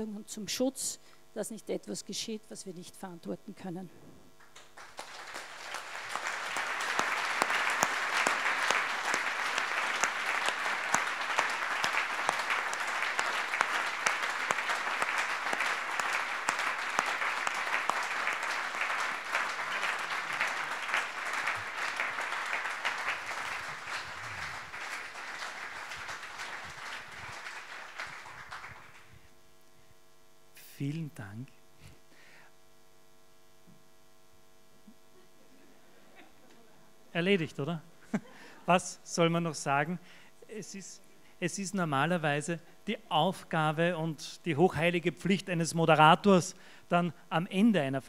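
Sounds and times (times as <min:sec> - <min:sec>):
audience applauding: 0:04.4 - 0:29.2.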